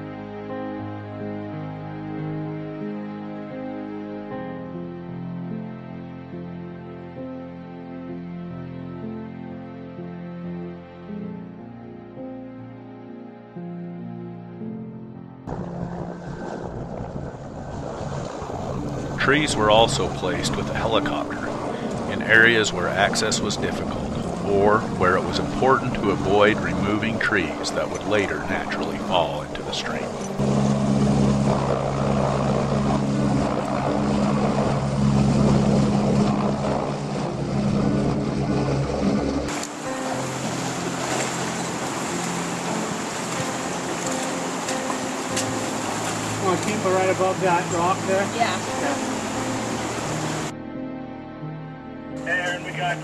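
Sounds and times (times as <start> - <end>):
background music: 0.0 - 17.1, 18.5 - 53.0
shallow river rushing: 15.5 - 50.6
helicopter rotor and engine: 19.2 - 25.0, 26.3 - 50.5.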